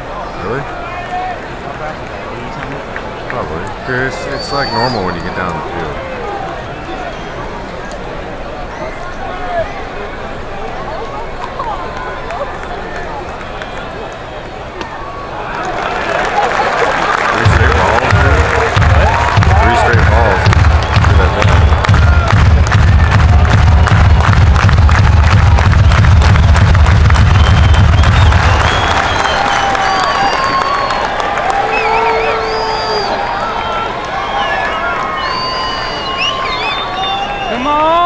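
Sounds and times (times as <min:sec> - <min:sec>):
crowd murmur: 0:00.0 - 0:24.4
crowd cheering and clapping: 0:00.0 - 0:38.0.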